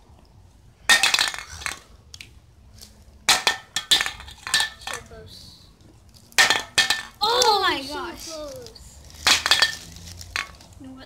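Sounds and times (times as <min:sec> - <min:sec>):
spray can clattering on concrete: 0:09.2 - 0:10.6.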